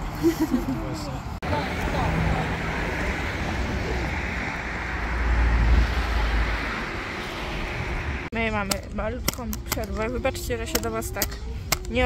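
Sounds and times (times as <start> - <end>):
vehicle passing rumble: 0.0 - 8.5
car traffic rushing: 0.0 - 11.7.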